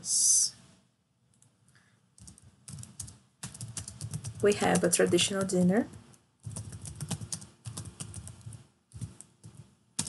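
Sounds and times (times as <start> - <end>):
typing on computer keyboard: 2.2 - 9.7.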